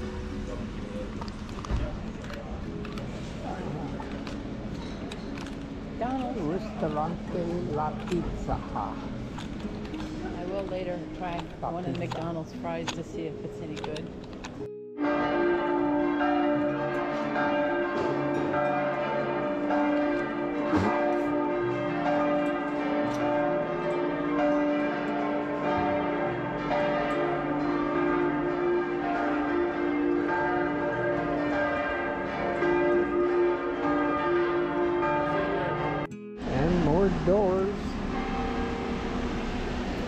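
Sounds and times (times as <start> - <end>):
church bells pealing: 0.0 - 40.0.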